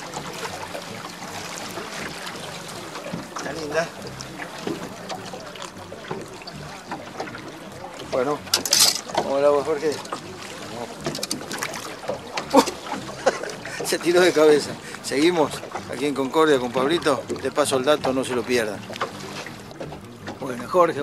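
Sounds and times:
fish splashing into water: 0:00.0 - 0:14.2
voices: 0:00.0 - 0:18.9
river water: 0:00.0 - 0:21.0
wind: 0:00.0 - 0:21.0.

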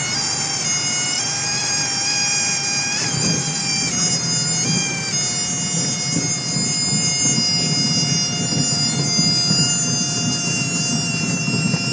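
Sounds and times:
propeller aircraft engine drone: 0:00.0 - 0:11.9.

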